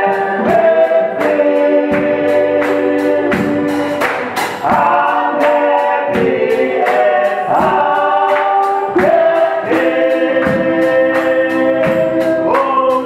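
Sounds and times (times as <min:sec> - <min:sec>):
group singing in harmony: 0:00.0 - 0:13.0
steady percussive beat: 0:00.0 - 0:13.0.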